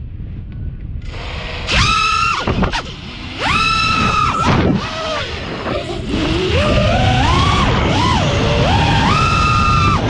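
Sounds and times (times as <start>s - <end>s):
quadcopter motors whining: 1.0s - 10.0s.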